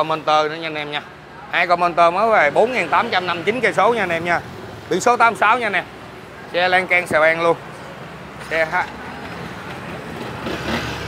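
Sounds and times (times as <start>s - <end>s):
motorbike and vehicle engines passing: 0.0s - 11.0s.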